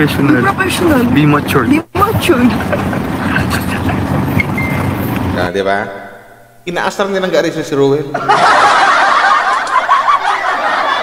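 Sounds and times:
people talking: 0.0 - 4.1, 5.4 - 8.4.

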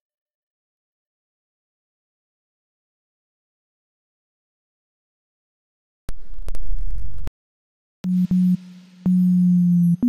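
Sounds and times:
low synth bass tone: 8.0 - 10.0.

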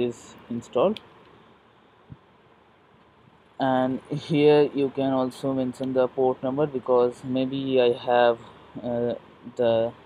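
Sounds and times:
faint room hiss: 0.0 - 10.0.

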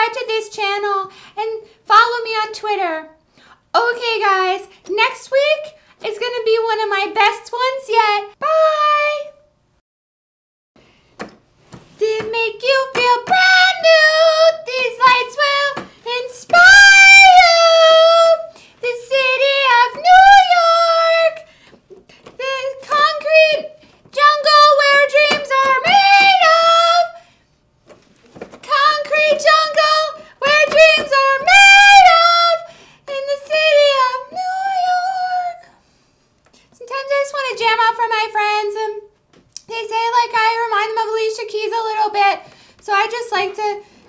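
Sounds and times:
woman singing: 12.0 - 21.5, 22.2 - 27.2, 28.6 - 35.7, 36.8 - 43.8.

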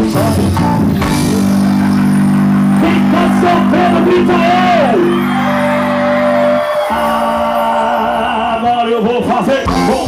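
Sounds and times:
live band with guitar and bass: 0.0 - 10.0.

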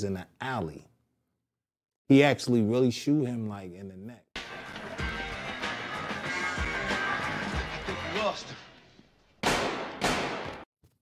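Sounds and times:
voice: 0.0 - 0.9, 2.1 - 4.3
movie soundtrack music: 4.4 - 10.6
loud gunshots: 9.4 - 10.6.

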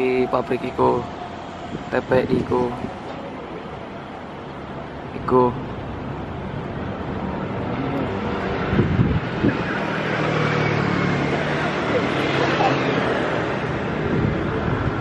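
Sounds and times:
vehicles passing: 0.0 - 15.0.

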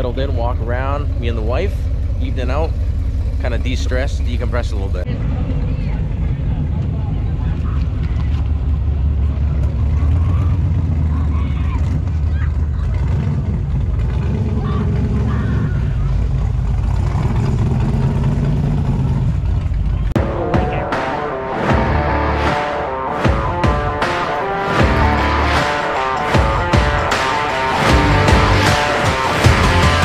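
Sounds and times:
car engine rumbling: 0.0 - 30.0
music: 20.2 - 30.0.

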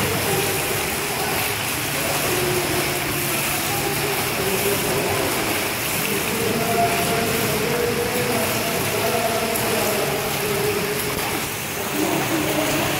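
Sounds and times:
swimmer splashing water: 0.0 - 12.9.

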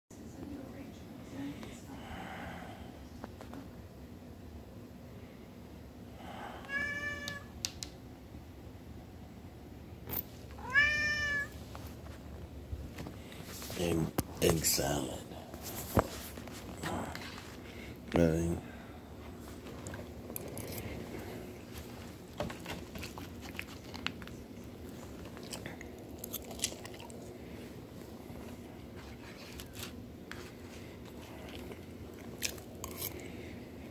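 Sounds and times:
low steady hum: 0.1 - 33.9
cat meowing: 6.7 - 7.5, 10.6 - 11.6
person chewing food: 19.6 - 33.9.

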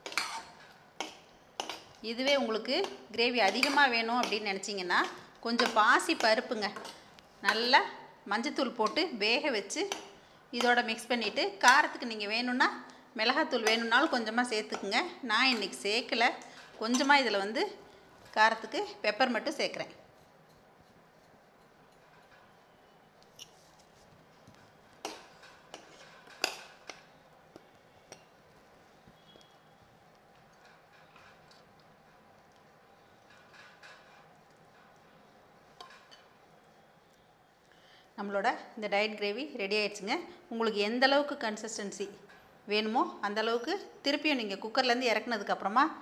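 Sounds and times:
woman speaking: 2.0 - 9.9, 10.6 - 17.8, 18.4 - 20.0.

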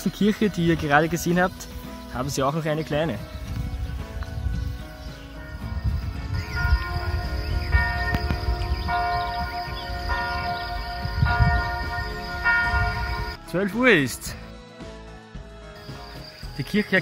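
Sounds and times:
church bells ringing: 5.4 - 13.4.

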